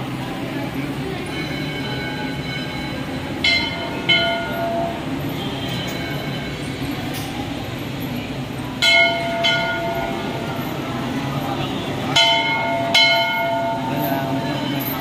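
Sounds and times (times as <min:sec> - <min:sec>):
crowd noise: 0:00.0 - 0:15.0
temple bell ringing: 0:00.0 - 0:15.0.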